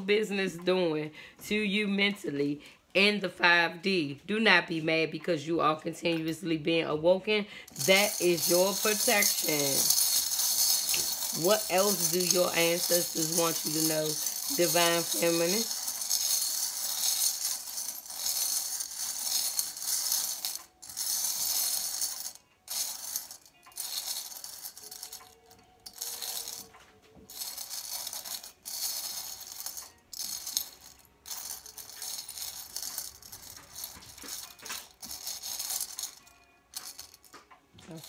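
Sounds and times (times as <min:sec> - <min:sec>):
small metal charms jingling: 0:07.7 - 0:38.0.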